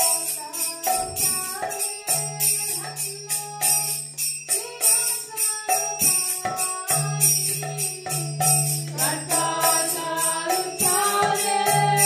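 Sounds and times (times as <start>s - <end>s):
jingling hand cymbals: 0.0s - 12.0s
voices chanting a mantra: 6.9s - 12.0s.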